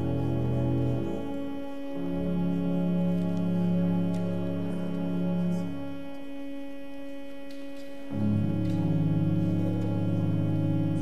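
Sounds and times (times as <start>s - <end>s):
pipe organ sustained note: 0.0s - 11.0s.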